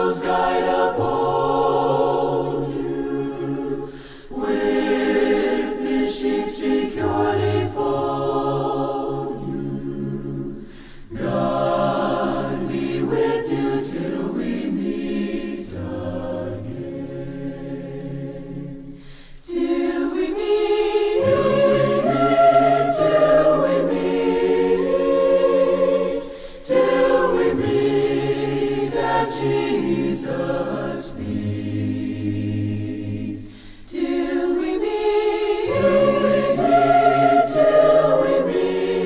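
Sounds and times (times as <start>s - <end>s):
choir singing a hymn: 0.0s - 39.0s.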